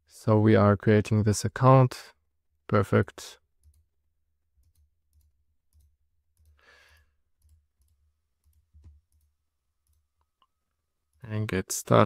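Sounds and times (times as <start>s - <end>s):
soft breath: 6.6s - 7.2s.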